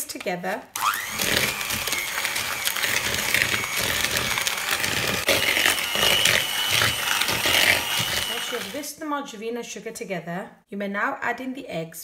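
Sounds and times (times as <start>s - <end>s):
electric hand mixer motor whine: 0.8s - 8.8s.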